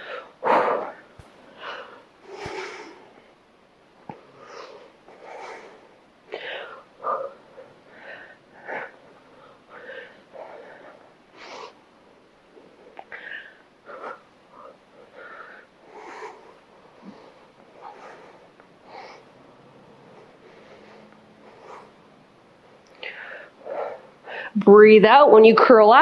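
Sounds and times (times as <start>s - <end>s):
woman breathing heavily: 0.0s - 24.6s.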